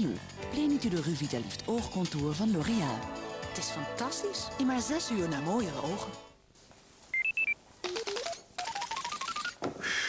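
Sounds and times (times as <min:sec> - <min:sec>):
high beeps: 0:07.1 - 0:09.6.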